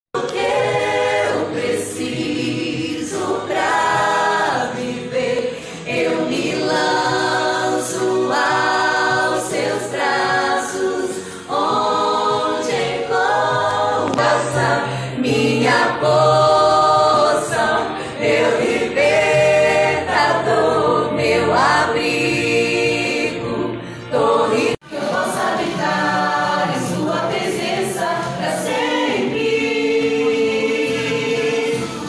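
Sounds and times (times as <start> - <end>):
choir singing: 0.2 - 32.0.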